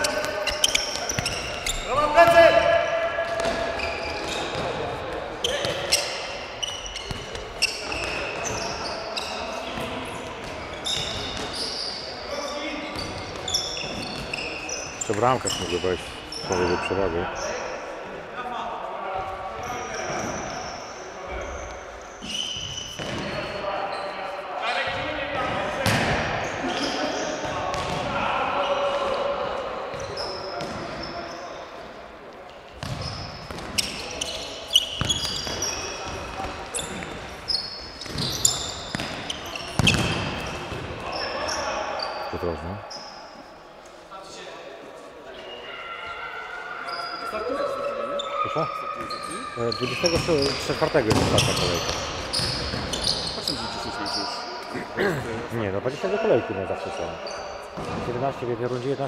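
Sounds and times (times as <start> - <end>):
shoes squeaking on court: 0.0 - 2.4, 3.3 - 17.6, 19.2 - 28.1, 29.9 - 31.8, 32.5 - 43.5, 46.9 - 54.8, 56.7 - 58.2
ball kicked and bouncing: 39.8 - 40.2.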